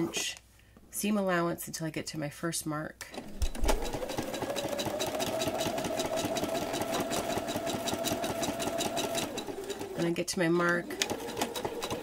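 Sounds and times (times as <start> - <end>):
sewing machine motor whine: 3.5 - 12.0.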